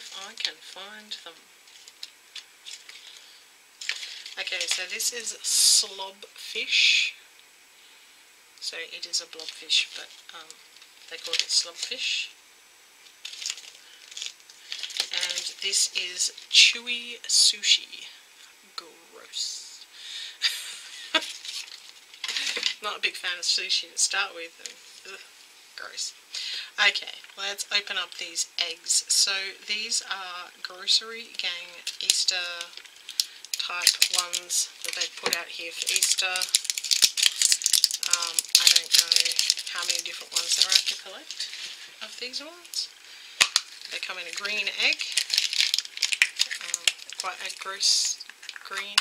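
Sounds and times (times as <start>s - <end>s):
wrapper crinkling: 0.0s - 5.3s, 9.3s - 12.2s, 13.0s - 16.5s, 21.1s - 22.9s, 31.4s - 49.0s
plastic toy figures clicking: 33.5s - 41.0s.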